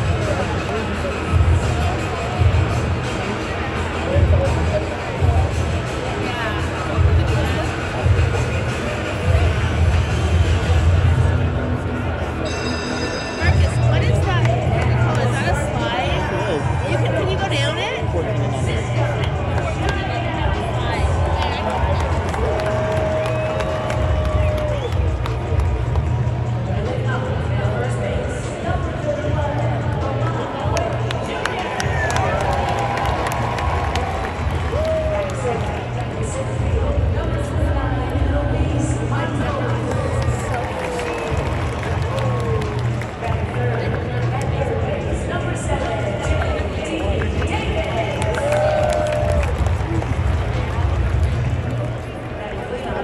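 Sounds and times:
crowd noise: 0.0 - 53.0
echoing announcer voice: 12.4 - 25.2.

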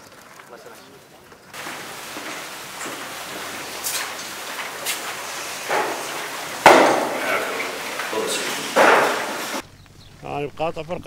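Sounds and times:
steady background noise: 0.4 - 11.0
loud thud: 1.6 - 9.6
sharp knocks and clatters: 1.6 - 9.6.

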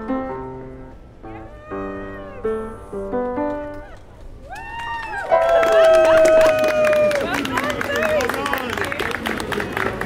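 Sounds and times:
crowd applauding: 3.4 - 10.0.

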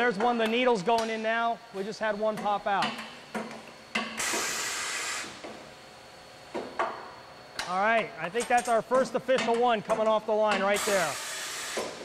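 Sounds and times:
compressed air hiss: 4.1 - 5.4, 10.7 - 12.0.

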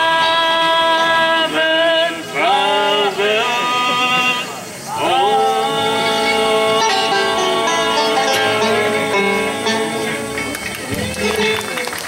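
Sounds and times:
bluegrass band playing: 0.0 - 12.0
voices: 0.0 - 12.0.

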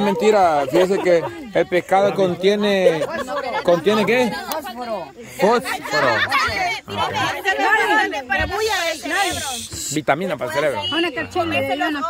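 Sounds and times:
people talking over one another: 0.0 - 12.0
hiss: 8.6 - 10.0.

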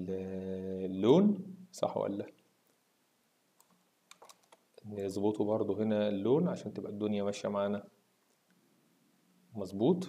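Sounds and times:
keyboard key clicks: 3.6 - 4.6.

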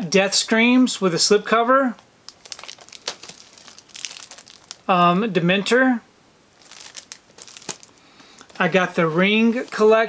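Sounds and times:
plastic packaging crinkling: 2.3 - 5.3, 6.6 - 9.9.

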